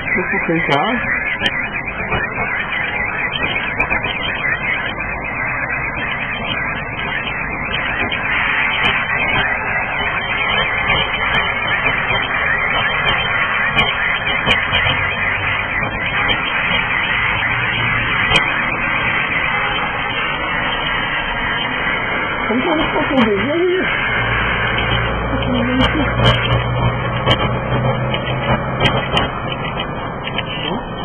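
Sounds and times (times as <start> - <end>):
fireworks crackling and popping: 0.0 - 31.0.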